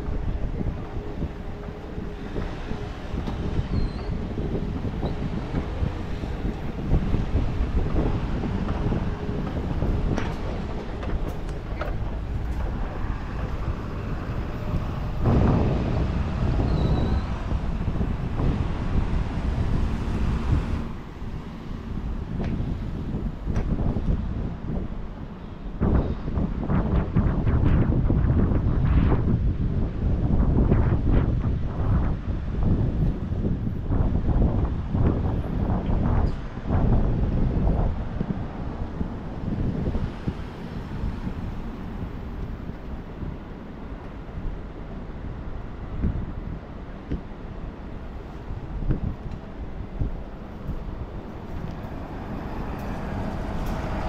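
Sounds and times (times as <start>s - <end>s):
street traffic rumble: 0.0s - 54.0s
wind buffeting microphone: 0.0s - 54.0s.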